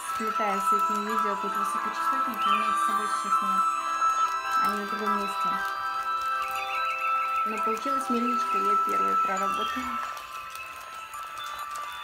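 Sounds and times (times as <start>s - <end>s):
music of sustained high tones: 0.0s - 12.0s.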